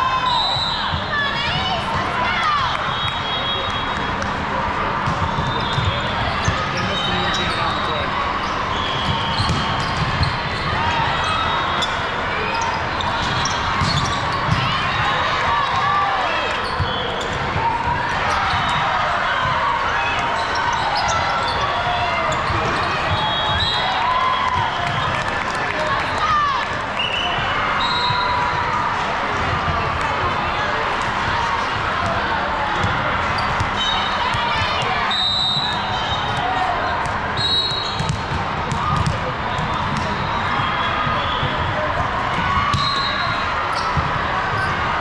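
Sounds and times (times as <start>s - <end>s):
din of many voices: 0.0s - 45.0s.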